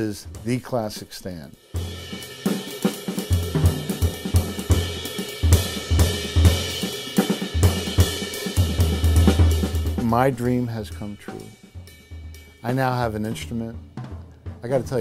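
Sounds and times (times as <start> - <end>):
drum strokes: 0.0 - 15.0.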